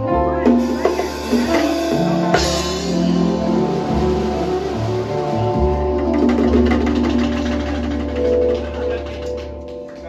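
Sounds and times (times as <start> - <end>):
low bass note: 0.0 - 9.2
saxophone sustained notes: 0.0 - 9.8
light percussion: 0.4 - 10.0.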